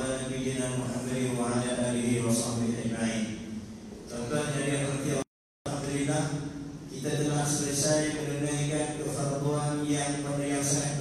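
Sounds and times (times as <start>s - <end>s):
man chanting into a microphone: 4.1s - 11.0s.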